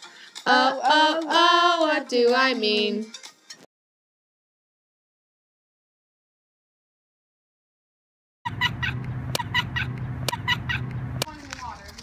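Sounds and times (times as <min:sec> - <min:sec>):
low hum: 0:08.5 - 0:11.4.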